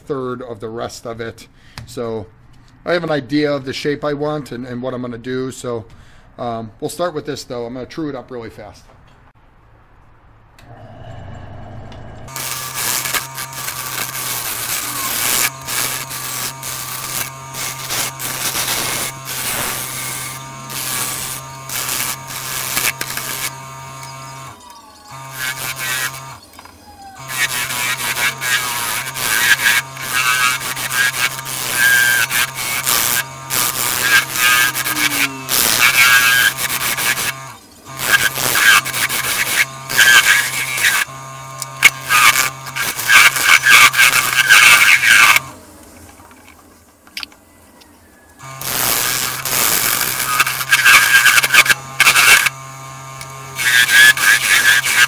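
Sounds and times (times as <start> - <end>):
lathe motor humming: 10.7 - 45.6, 48.4 - 55.0
tool tearing wood shavings: 12.3 - 45.6, 48.4 - 55.0.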